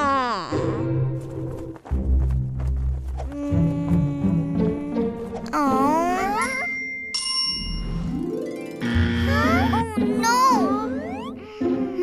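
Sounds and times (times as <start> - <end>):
light background music: 0.6 - 12.0
bright ding: 6.7 - 8.0.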